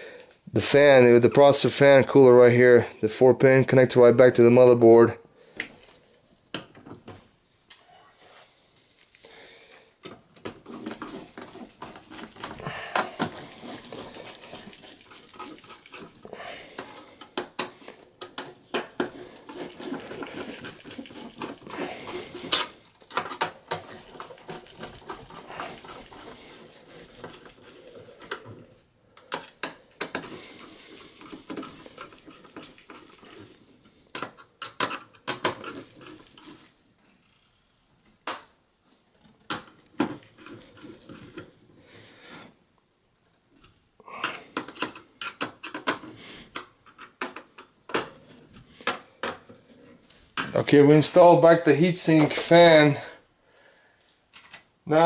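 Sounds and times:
rustling: 10.2s - 28.9s, 30.1s - 34.1s, 35.5s - 38.2s
metal scrapes: 10.5s - 17.7s, 18.3s - 28.8s.

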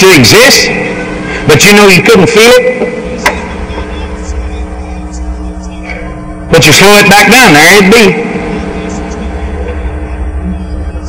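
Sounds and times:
constant hum: 0.0s - 11.0s.

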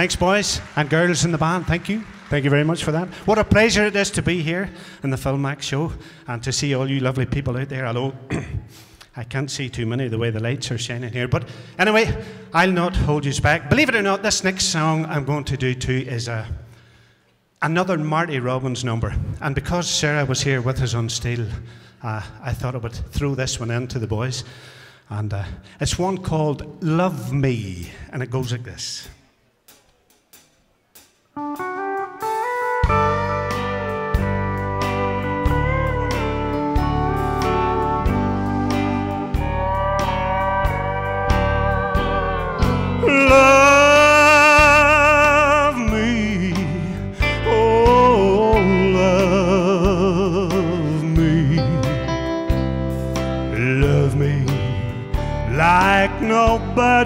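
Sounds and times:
pedal steel guitar: 31.4s - 57.0s
bass and drums: 31.5s - 57.0s.

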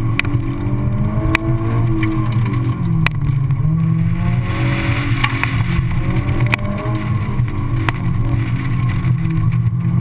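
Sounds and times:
car engine running hard: 0.0s - 10.0s.

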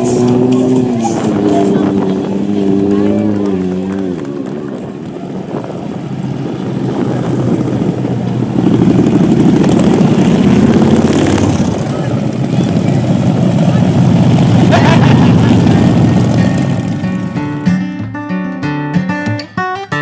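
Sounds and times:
motorcycle engines rumbling past: 0.0s - 17.8s.

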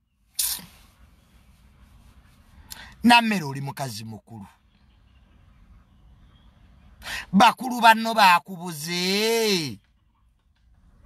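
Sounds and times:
short sharp hiss: 0.3s - 1.0s.

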